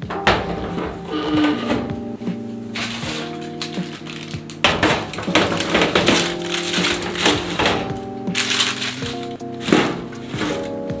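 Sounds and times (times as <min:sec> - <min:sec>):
baking paper crinkling: 0:00.0 - 0:11.0
soft background music: 0:00.0 - 0:11.0.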